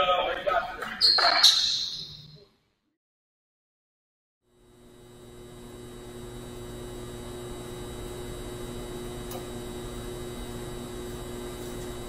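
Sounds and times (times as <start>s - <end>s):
high ringing: 1.0s - 2.4s.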